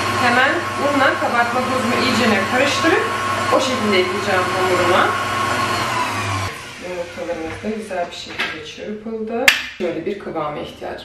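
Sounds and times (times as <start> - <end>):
stand mixer whisking: 0.0 - 7.8.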